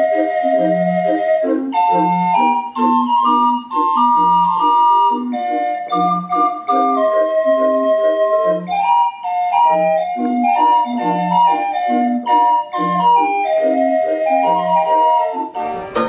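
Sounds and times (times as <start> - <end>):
mechanical organ playing lively tune: 0.0 - 16.0.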